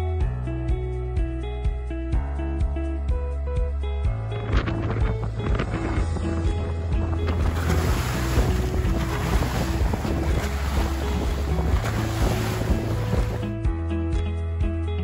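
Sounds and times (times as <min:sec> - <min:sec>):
background music with bass line: 0:00.0 - 0:15.0
wind on microphone: 0:04.1 - 0:13.6
waves rushing: 0:07.1 - 0:13.5.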